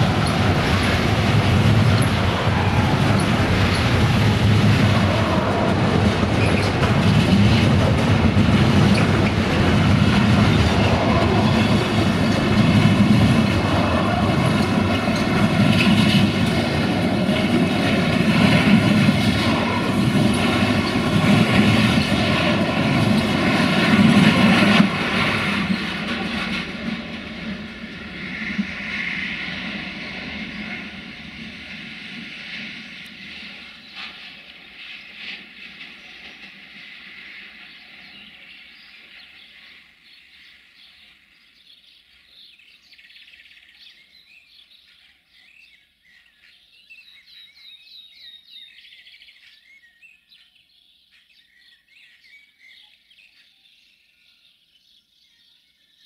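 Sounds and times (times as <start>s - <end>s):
train wheels rumbling on rails: 0.0s - 49.6s.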